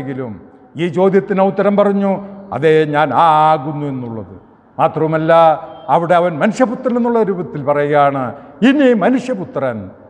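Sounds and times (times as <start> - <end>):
man preaching: 0.0 - 10.0.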